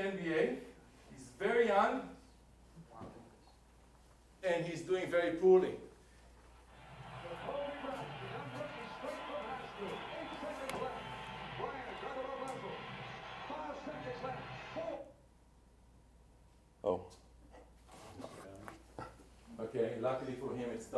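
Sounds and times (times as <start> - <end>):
arena crowd noise: 6.7 - 15.2.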